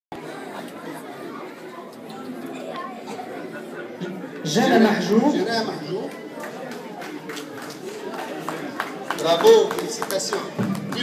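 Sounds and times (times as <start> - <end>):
chatter of many voices: 0.1 - 11.0.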